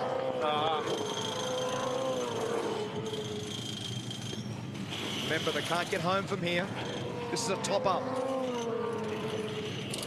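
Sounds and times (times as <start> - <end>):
mechanical background noise: 0.0 - 10.0.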